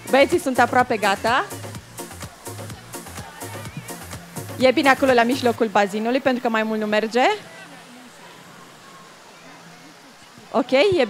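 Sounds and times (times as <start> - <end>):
faint voices: 0.0 - 11.0
water spraying from shower jet: 0.0 - 11.0.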